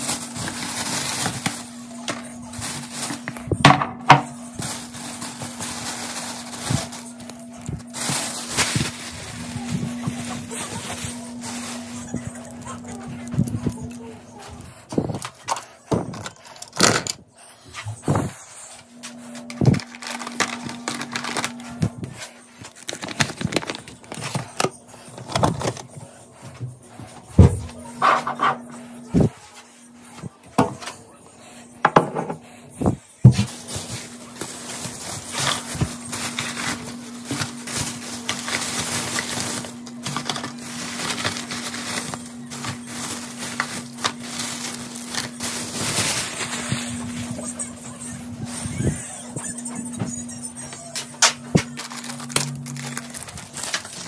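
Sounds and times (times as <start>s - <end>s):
plastic bag rustling: 0.0s - 17.2s, 18.1s - 29.3s, 33.3s - 50.4s, 51.4s - 54.0s
steady low hum: 0.0s - 54.0s.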